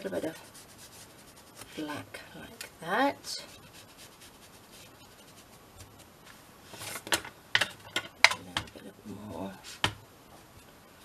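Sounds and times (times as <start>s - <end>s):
rubbing on tabletop: 0.0s - 1.9s, 3.3s - 7.1s, 9.6s - 10.0s.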